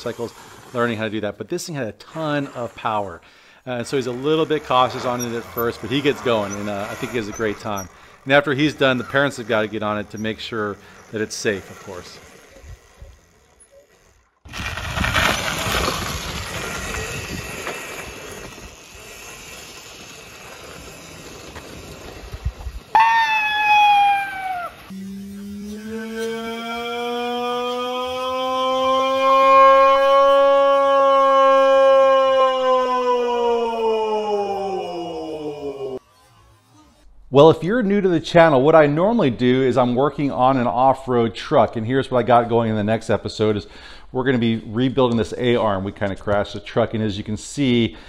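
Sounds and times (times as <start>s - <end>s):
electric motor whining: 23.7s - 29.1s.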